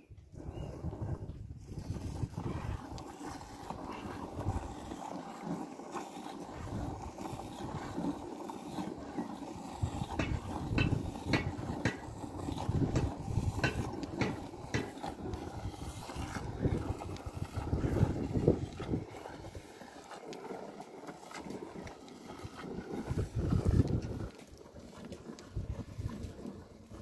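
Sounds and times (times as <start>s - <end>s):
milk squirting into bucket: 0.4s - 27.0s.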